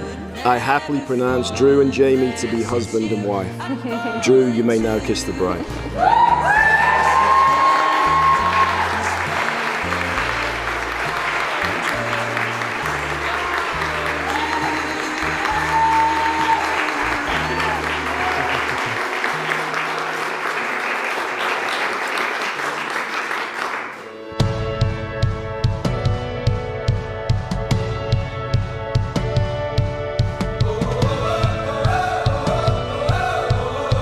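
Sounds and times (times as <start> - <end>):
crowd applauding and cheering: 5.7 - 24.3
people whooping: 6.0 - 9.6, 13.6 - 20.8
music with bass line: 24.2 - 34.0.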